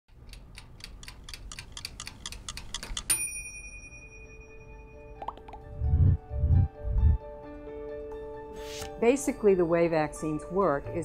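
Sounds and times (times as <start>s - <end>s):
clock-like ticking: 0.1s - 3.2s
bright bell ding: 3.1s - 5.2s
soft music with held tone: 3.2s - 11.0s.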